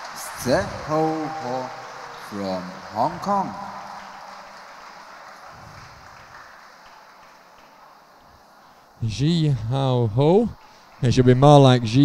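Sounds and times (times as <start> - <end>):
hollow arena room tone: 0.0 - 12.0.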